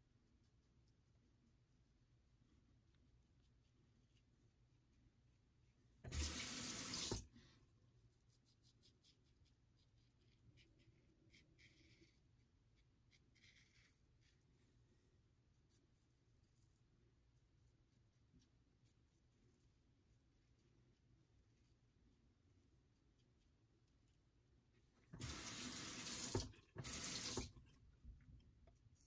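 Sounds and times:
tap running: 0:25.1 - 0:27.6.

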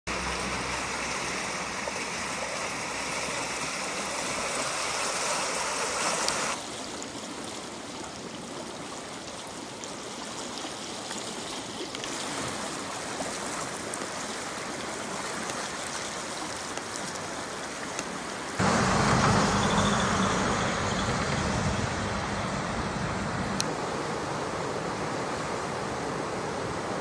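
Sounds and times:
river water rushing: 0:00.1 - 0:27.0.

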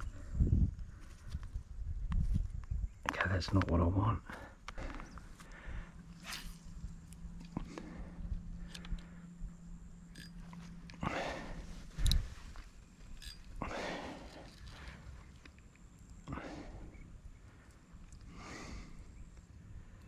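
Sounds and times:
low steady hum: 0:00.0 - 0:20.0
small clicks and rustles: 0:11.6 - 0:13.6, 0:14.2 - 0:16.2.

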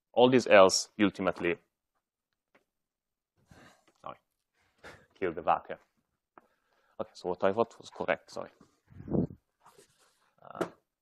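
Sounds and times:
speech: 0:00.2 - 0:01.6, 0:05.2 - 0:05.9, 0:07.0 - 0:08.6
faint breath: 0:03.4 - 0:03.9.

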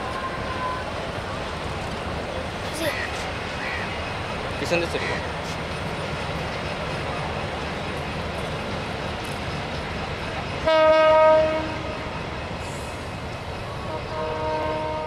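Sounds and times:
train rumbling: 0:00.0 - 0:15.0
train horn blasts: 0:10.6 - 0:12.1, 0:13.8 - 0:15.0.

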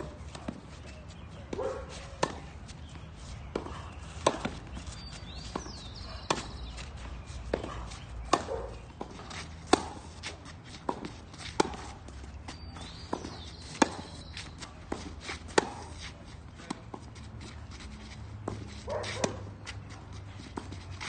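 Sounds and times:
footsteps shuffling on clay: 0:00.0 - 0:21.0
tennis ball racket hits: 0:01.5 - 0:02.7, 0:03.5 - 0:21.0.

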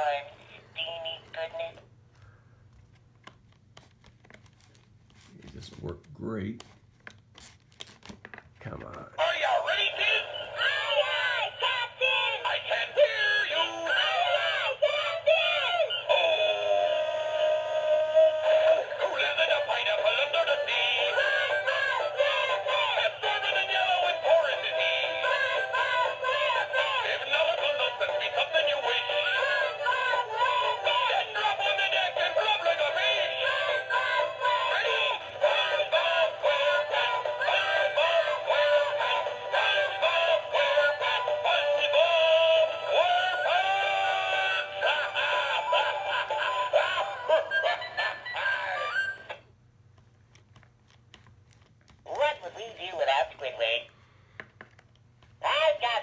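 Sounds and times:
tinny song from toy speaker: 0:09.2 - 0:49.5, 0:55.4 - 0:56.0.

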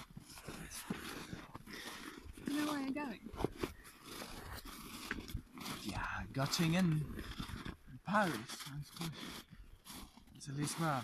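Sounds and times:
footsteps crunching in snow: 0:00.0 - 0:11.0.

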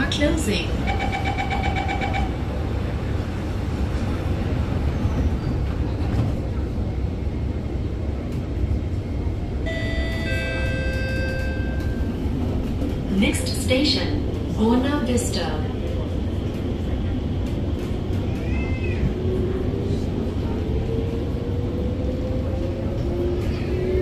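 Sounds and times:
train wheels rumbling: 0:00.0 - 0:24.0.

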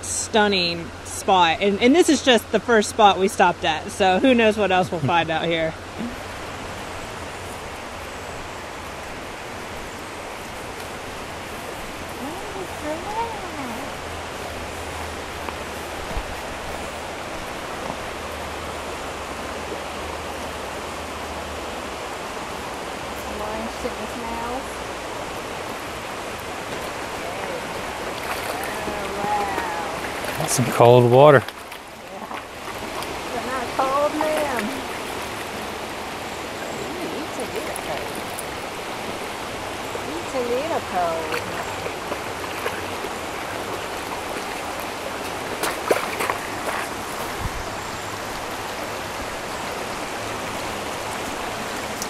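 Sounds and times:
stream flowing over rocks: 0:00.0 - 0:52.0
faint voices: 0:28.4 - 0:31.4.

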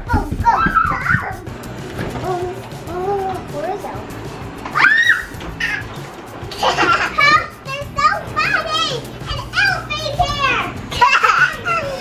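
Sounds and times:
children squealing: 0:00.5 - 0:01.4, 0:04.6 - 0:06.0.

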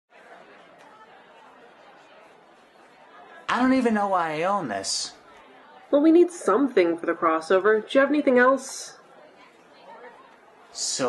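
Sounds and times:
faint background chatter: 0:00.1 - 0:11.0.

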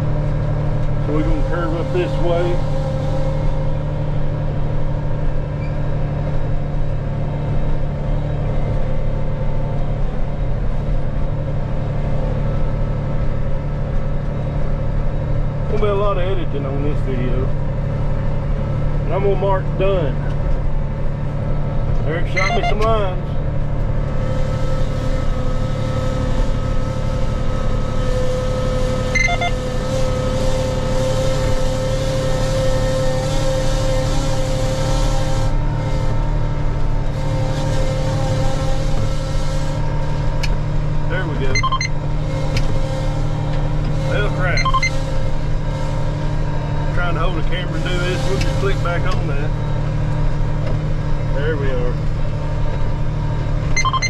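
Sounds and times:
steady whine: 0:00.0 - 0:54.0
tractor engine drone: 0:00.0 - 0:54.0.

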